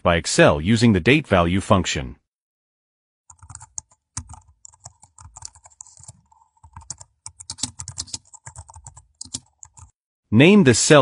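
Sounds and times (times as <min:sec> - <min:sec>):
computer keyboard typing: 0:03.3 - 0:10.0.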